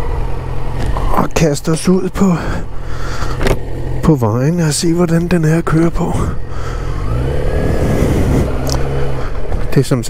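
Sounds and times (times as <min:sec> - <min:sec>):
motorcycle engine revving: 0:02.2 - 0:10.0.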